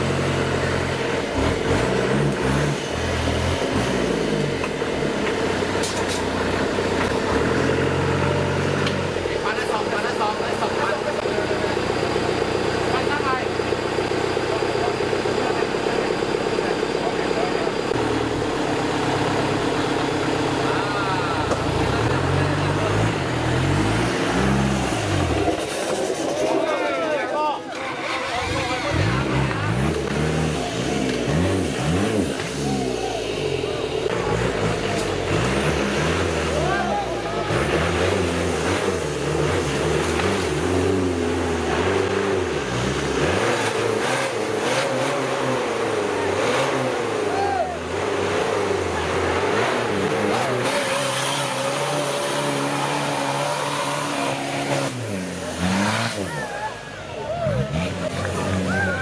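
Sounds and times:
truck engine revving: 0:00.0 - 0:59.0
spectators shouting: 0:32.3 - 0:34.1, 0:46.0 - 0:48.1, 0:55.7 - 0:59.0.

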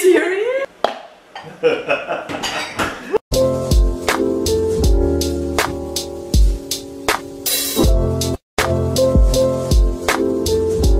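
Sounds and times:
woman laughing: 0:01.5 - 0:02.4
dishes and utensils clinking: 0:02.3 - 0:03.0.

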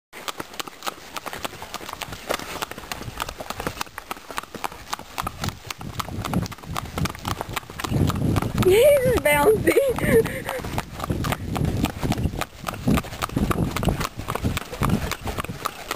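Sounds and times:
horse hooves on paved road: 0:00.2 - 0:15.9
person speaking: 0:08.6 - 0:10.5.

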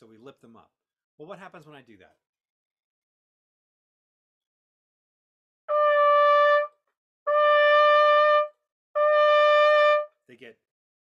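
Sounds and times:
trumpet sustained note: 0:05.7 - 0:10.1.

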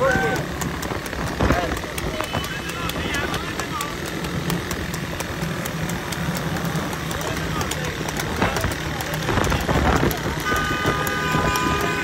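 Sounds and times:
men shouting: 0:00.0 - 0:00.7
motorcycle engines drone: 0:00.0 - 0:12.0.

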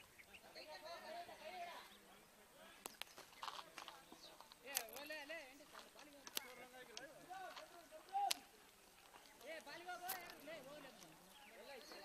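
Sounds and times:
sharp clicks: 0:02.8 - 0:03.6.

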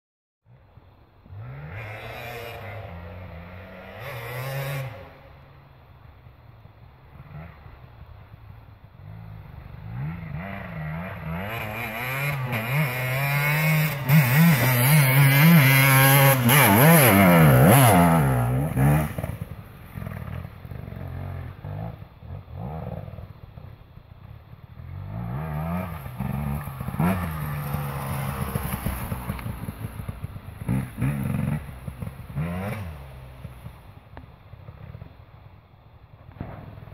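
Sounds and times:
dirt bike engine revving: 0:01.3 - 0:05.2, 0:09.1 - 0:23.2, 0:24.8 - 0:33.8.

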